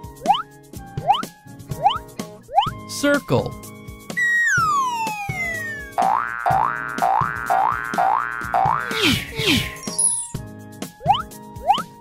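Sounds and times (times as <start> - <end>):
background music: 0.0 - 12.0
falling whistle glide: 4.2 - 6.0, 8.8 - 10.4
rising boing swoops: 4.2 - 9.7.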